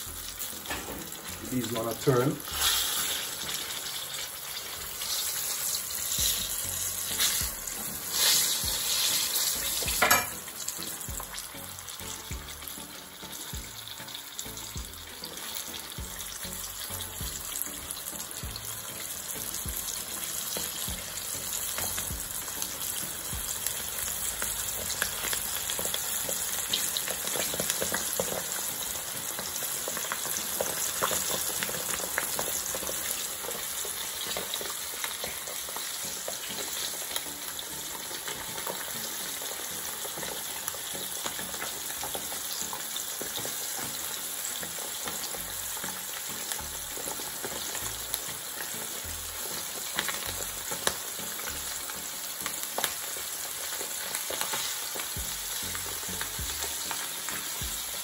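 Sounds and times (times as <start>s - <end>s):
chicken frying in hot oil: 0.0s - 58.0s.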